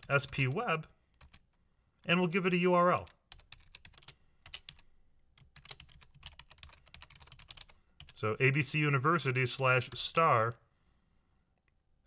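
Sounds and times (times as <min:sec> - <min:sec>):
computer keyboard typing: 0:00.0 - 0:01.6, 0:02.9 - 0:08.2.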